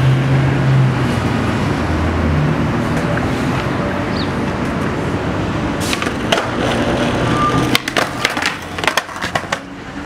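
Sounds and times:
skateboard wheels rolling on pavement: 0.4 - 10.0
skateboard clacks: 5.9 - 9.7.

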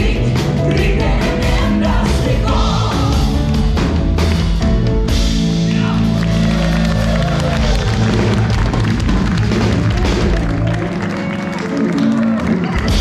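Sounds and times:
drum kit: 0.0 - 13.0
electric bass: 0.0 - 13.0
electric guitar: 3.4 - 13.0.

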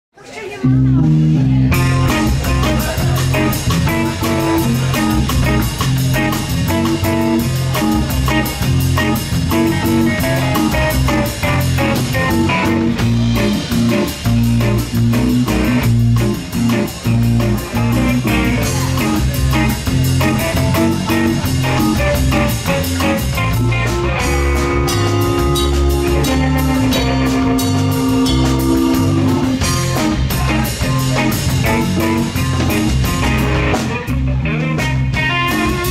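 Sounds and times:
funk band playing instrumental: 0.2 - 35.9.

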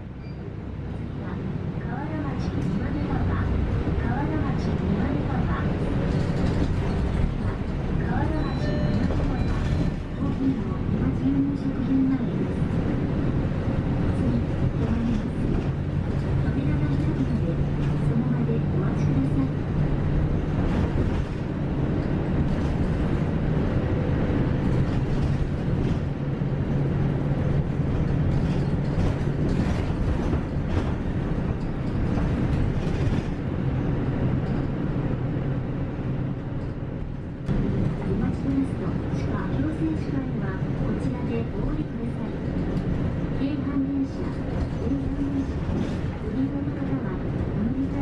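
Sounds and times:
bus engine and road rumble: 0.0 - 48.0.

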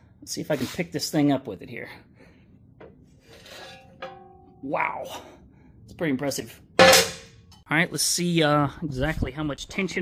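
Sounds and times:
light metallic ringing: 3.7 - 4.7.

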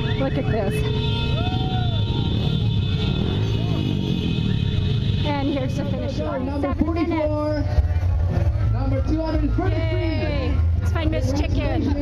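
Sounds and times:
motorbike traffic rumble: 0.0 - 12.0.

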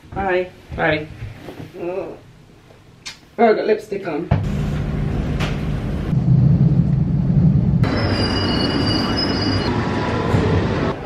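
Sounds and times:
train wheel squeal: 7.8 - 10.6.

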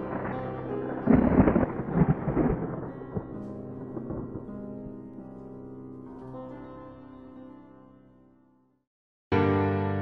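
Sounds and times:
thunderclap rumble: 0.0 - 5.3.

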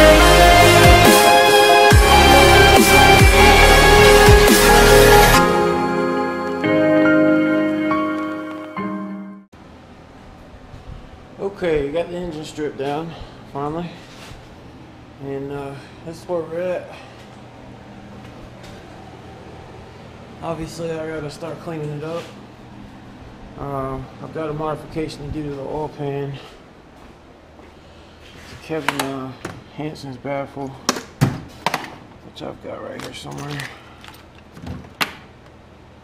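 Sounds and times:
air conditioner humming: 9.6 - 36.0.

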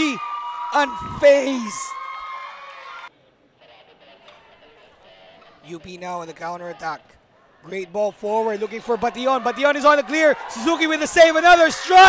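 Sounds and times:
football match ambience: 0.0 - 12.0.

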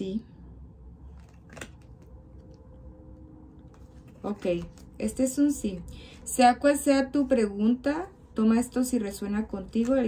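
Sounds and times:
faint steady hum: 0.0 - 10.0
playing cards clicking and snapping: 1.1 - 2.5.

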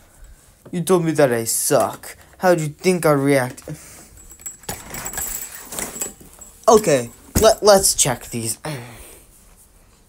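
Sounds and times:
jangling rattling noise: 3.8 - 8.5.

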